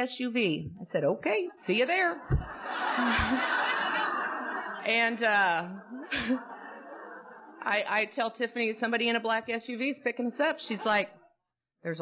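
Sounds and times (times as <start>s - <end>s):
audience laughing: 1.5s - 8.2s, 10.6s - 11.3s.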